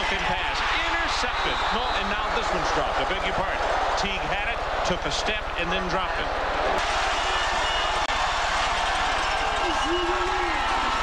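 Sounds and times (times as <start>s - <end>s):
stadium crowd roar: 0.0s - 11.0s.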